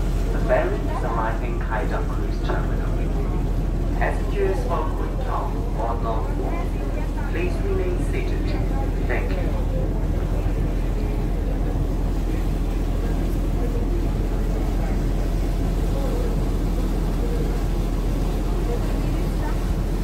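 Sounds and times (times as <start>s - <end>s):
faint passenger voices: 0.0s - 20.0s
ferry engine drone: 0.0s - 20.0s.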